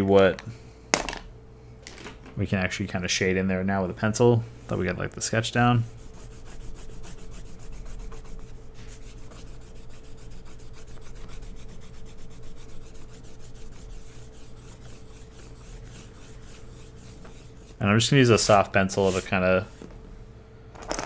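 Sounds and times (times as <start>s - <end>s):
eraser rubbing on paper: 5.8s - 19.9s.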